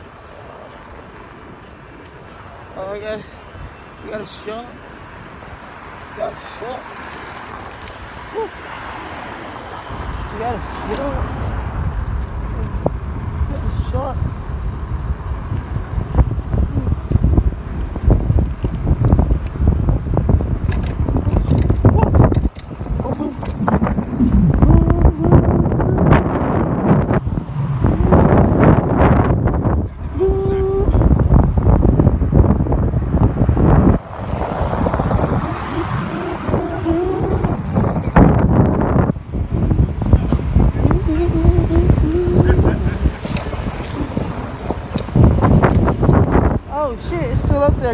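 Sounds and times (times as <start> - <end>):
street traffic: 0.0 - 47.9
wind buffeting microphone: 5.2 - 47.9
short squeal: 19.0 - 19.5.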